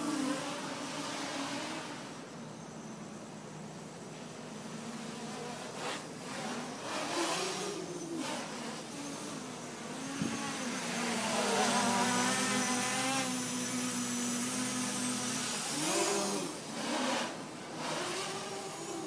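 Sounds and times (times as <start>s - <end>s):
quadcopter motors buzzing: 0.0s - 19.0s.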